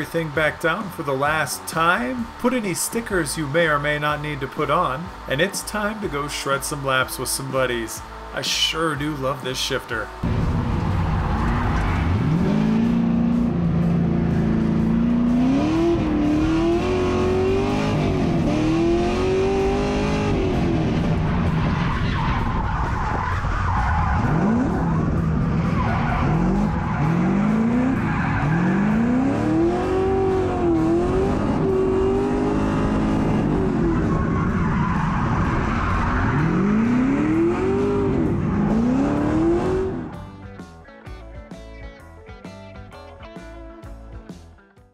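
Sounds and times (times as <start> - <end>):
race car engine revving: 10.2 - 40.3.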